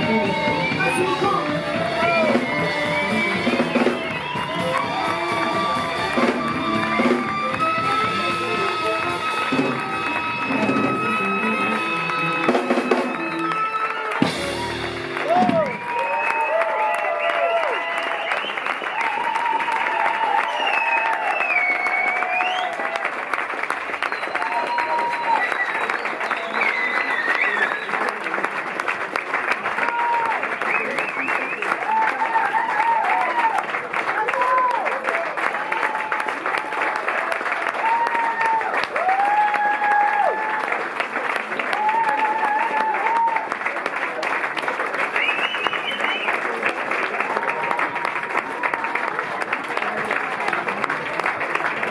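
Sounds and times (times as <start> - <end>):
crowd cheering and whooping: 0.0 - 28.5, 29.5 - 51.9
audience applauding: 0.0 - 51.9.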